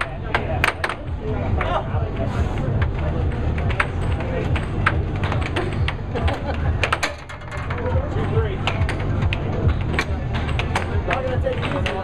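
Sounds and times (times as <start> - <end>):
air hockey puck clacking: 0.0 - 1.8, 2.6 - 12.0.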